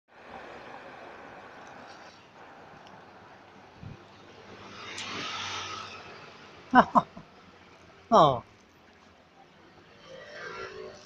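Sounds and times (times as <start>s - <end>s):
road vehicle passing by: 0.1s - 11.0s.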